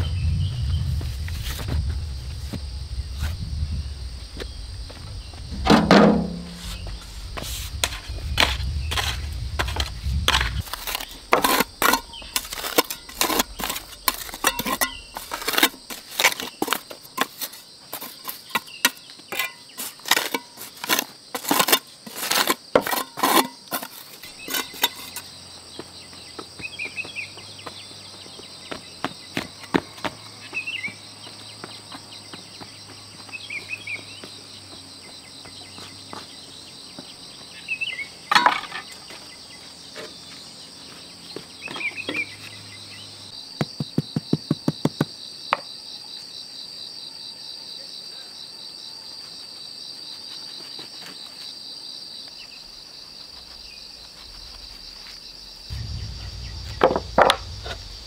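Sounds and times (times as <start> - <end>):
insects chirring: 0.0 - 58.0
trowel scraping on stone: 6.3 - 25.3.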